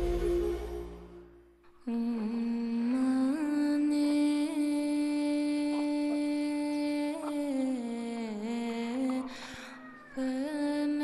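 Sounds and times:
soundtrack music: 0:00.0 - 0:01.5.

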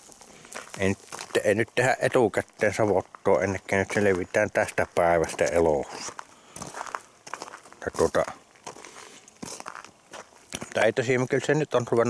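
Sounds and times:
faint crackling and rustling: 0:00.0 - 0:12.0.

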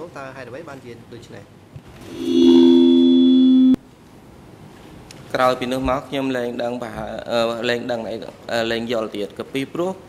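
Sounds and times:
two-pitch electronic tone: 0:02.0 - 0:03.8.

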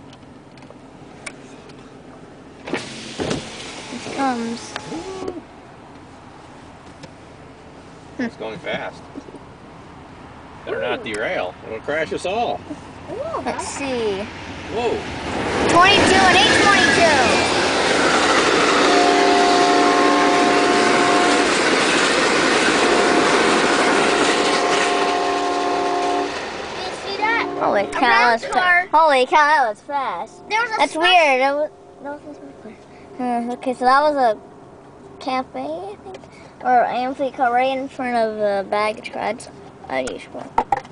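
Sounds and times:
car cabin background noise: 0:00.0 - 0:14.2, 0:26.8 - 0:40.9
person humming: 0:04.8 - 0:05.5
train passing at speed: 0:09.9 - 0:34.8
locomotive horn: 0:18.6 - 0:21.9, 0:22.6 - 0:28.3.

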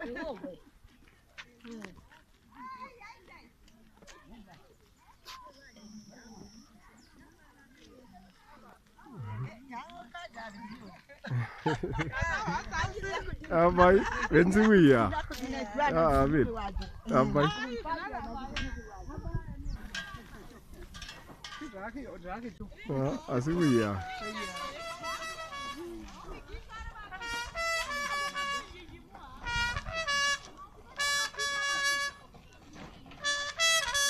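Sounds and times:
people talking and calling out: 0:00.0 - 0:34.0.

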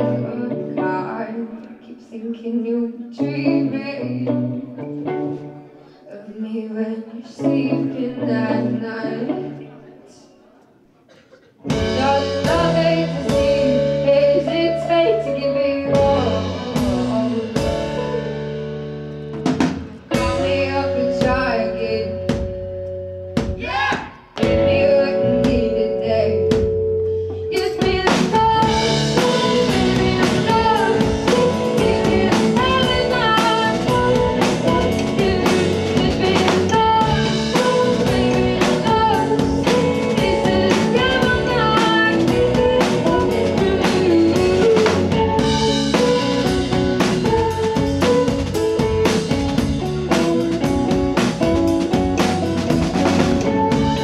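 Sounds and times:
bass guitar: 0:00.0 - 0:01.4, 0:03.2 - 0:05.8, 0:07.4 - 0:09.6, 0:11.6 - 0:54.0
electric guitars: 0:00.0 - 0:02.1, 0:03.1 - 0:06.1, 0:07.1 - 0:09.9, 0:11.6 - 0:54.0
woman singing: 0:00.0 - 0:04.9, 0:06.0 - 0:10.2, 0:11.7 - 0:18.7, 0:20.1 - 0:22.5, 0:24.4 - 0:50.4
drum kit: 0:11.6 - 0:54.0.

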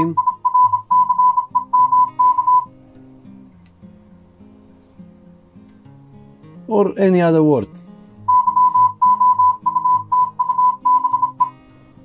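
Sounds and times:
morse code tone: 0:00.0 - 0:02.7, 0:08.3 - 0:11.6.

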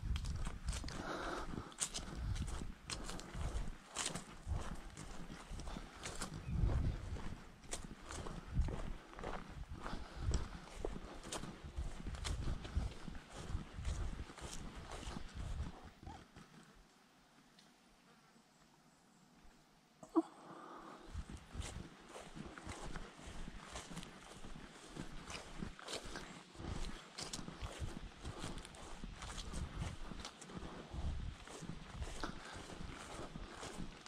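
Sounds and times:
footsteps on dirt track: 0:00.0 - 0:16.8, 0:21.0 - 0:34.0.

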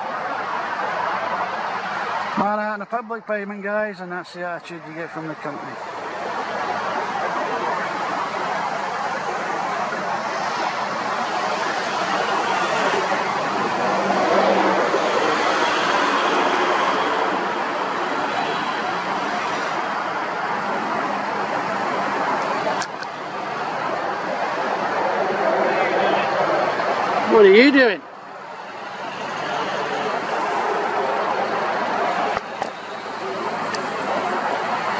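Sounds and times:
road traffic rush: 0:00.0 - 0:34.9.

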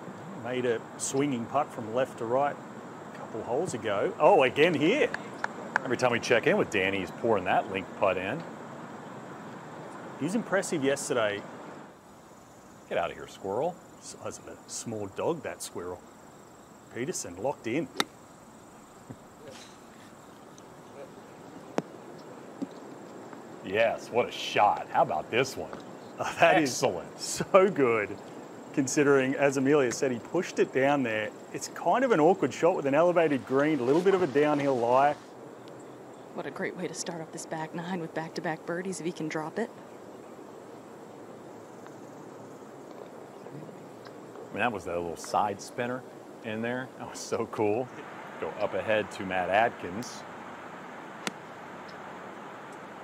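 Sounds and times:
faint outdoor background hiss: 0:00.0 - 0:53.0
golf club striking ball: 0:17.9 - 0:18.2, 0:51.2 - 0:51.5.

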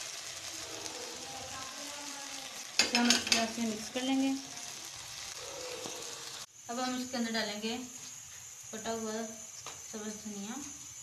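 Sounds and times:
hot oil sizzling: 0:00.0 - 0:11.0.

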